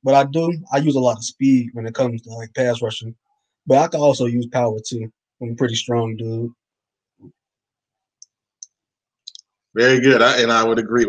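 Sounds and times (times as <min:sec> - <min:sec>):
faint low sound: 0:00.1 - 0:03.1, 0:03.7 - 0:06.5, 0:09.8 - 0:11.0.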